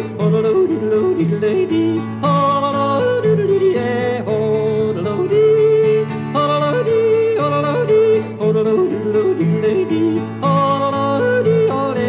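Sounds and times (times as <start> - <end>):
country instrumental accompaniment: 0.0 - 12.0
man yodeling: 0.0 - 12.0.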